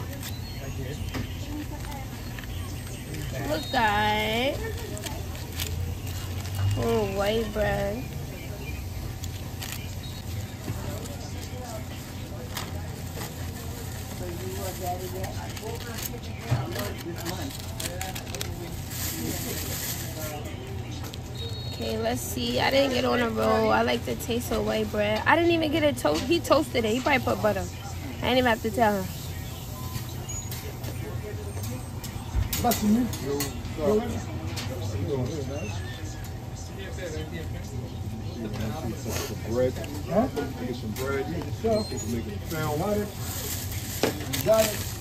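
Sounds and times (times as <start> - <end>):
paper and foil wrapping crinkling: 0.0 - 35.9, 38.5 - 45.0
faint background voices: 0.0 - 45.0.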